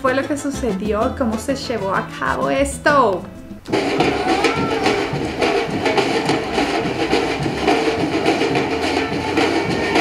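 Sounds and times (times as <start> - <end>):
marching drums beating: 2.9 - 10.0
crowd noise: 3.2 - 10.0.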